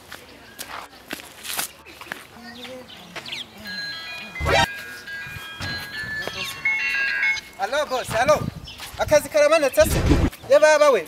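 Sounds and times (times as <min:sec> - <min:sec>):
phone ringtone beeping: 0:03.6 - 0:07.6.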